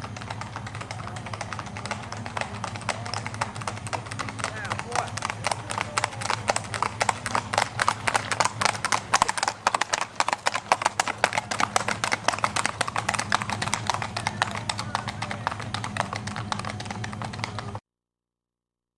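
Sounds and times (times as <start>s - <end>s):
hooves clip-clopping on asphalt: 0.0s - 17.8s
low steady hum: 0.0s - 17.8s.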